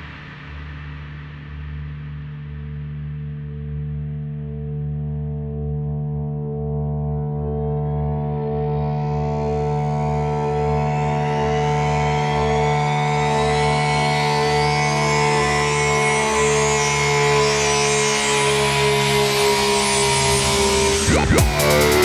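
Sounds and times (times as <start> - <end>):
synthesizer drone: 7.2 - 22.0
rising synth sweep: 10.3 - 22.0.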